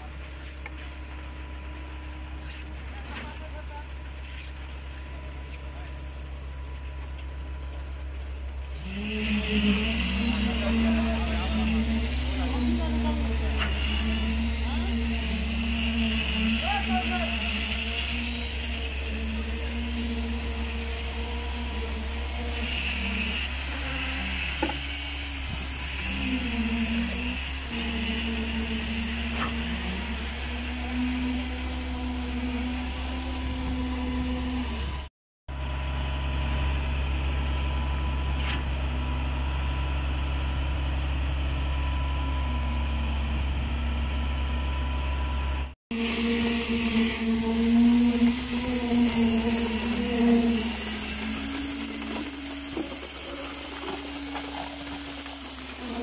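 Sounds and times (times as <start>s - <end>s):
concrete pump engine drone: 0.0s - 56.0s
wavering humming tone: 8.6s - 35.1s, 39.2s - 56.0s.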